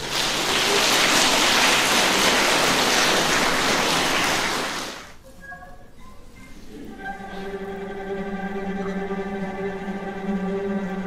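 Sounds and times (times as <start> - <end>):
audience applause: 0.0 - 5.2
orchestra held notes: 5.3 - 11.0.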